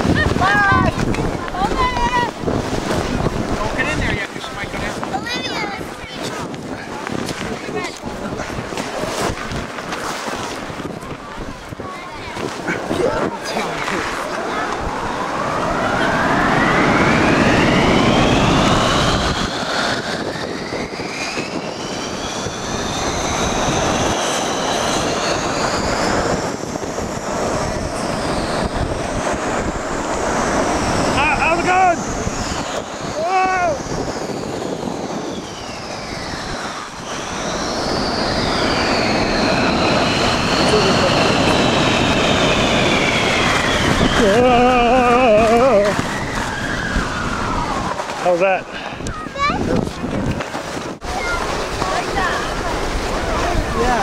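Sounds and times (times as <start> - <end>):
voices: 0.0 - 2.5, 10.8 - 18.6, 31.0 - 34.0, 36.3 - 42.2, 43.2 - 50.4, 51.0 - 54.0
snow tube whooshing on snow: 0.0 - 54.0
wind on microphone: 0.0 - 54.0.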